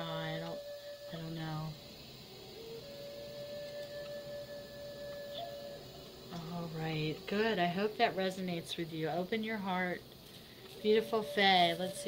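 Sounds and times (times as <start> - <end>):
steady ringing tone: 0.0 - 12.0.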